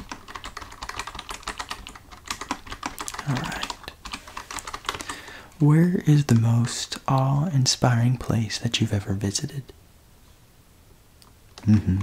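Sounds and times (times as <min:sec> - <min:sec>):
computer keyboard typing: 0:00.0 - 0:05.4
low vocal hum: 0:11.6 - 0:12.0.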